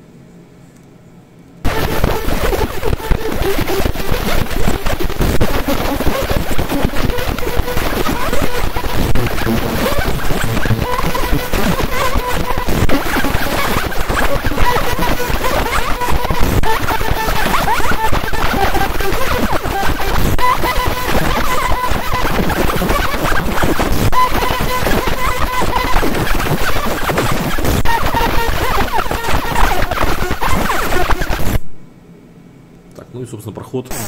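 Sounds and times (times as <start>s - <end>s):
laser engraving crackling: 1.6s - 31.7s
high steady tone: 1.7s - 31.6s.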